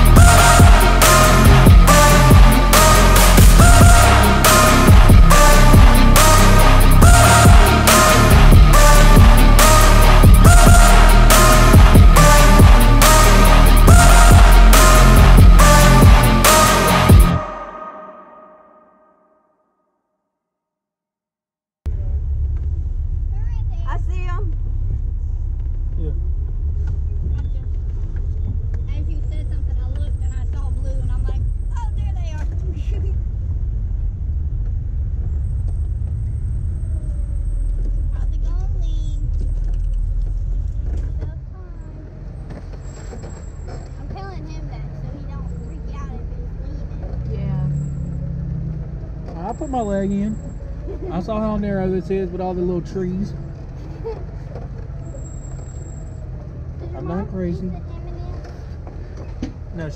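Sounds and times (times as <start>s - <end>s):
off-road vehicle engine rumble: 0.0s - 17.3s, 21.8s - 59.9s.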